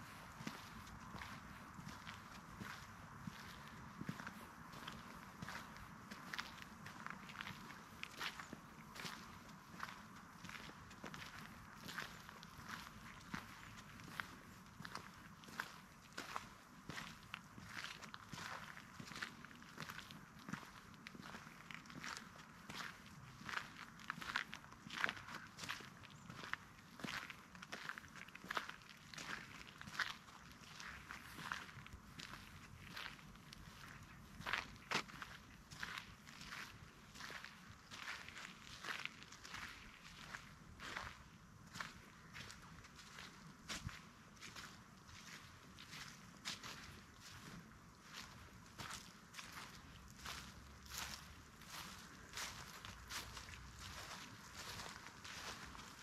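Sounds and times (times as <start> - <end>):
footsteps on sandy dirt path: 0.0 - 56.0.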